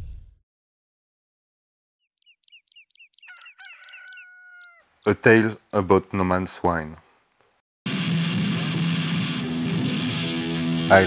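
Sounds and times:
quick high bird chirps: 0:02.1 - 0:05.1
rooster crowing: 0:03.2 - 0:04.9.

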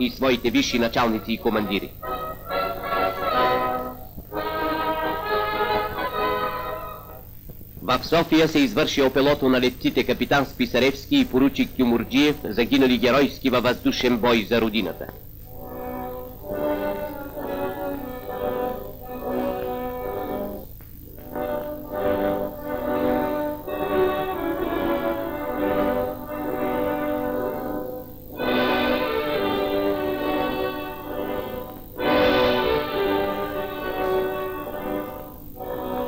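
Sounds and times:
orchestral music led by brass: 0:00.8 - 0:07.2, 0:21.2 - 0:36.0.

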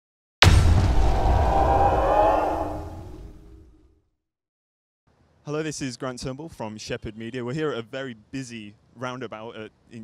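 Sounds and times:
deep rumble: 0:00.4 - 0:03.8.

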